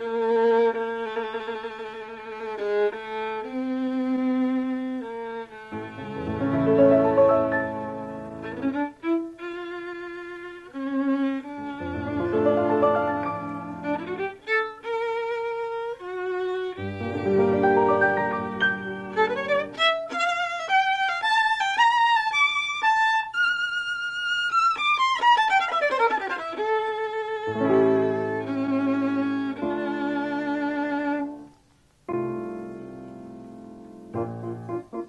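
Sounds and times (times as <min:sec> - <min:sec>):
violin long notes: 0:05.1 - 0:21.6
low piano notes: 0:05.8 - 0:08.9, 0:11.7 - 0:14.4, 0:16.8 - 0:20.0.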